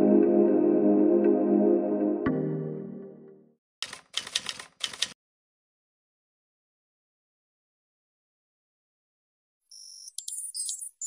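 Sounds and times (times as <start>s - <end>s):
typewriter keys clattering: 3.8s - 5.2s.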